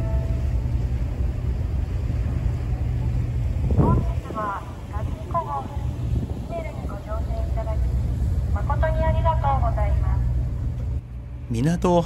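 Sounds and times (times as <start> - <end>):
ship engines rumbling: 0.0 - 12.0.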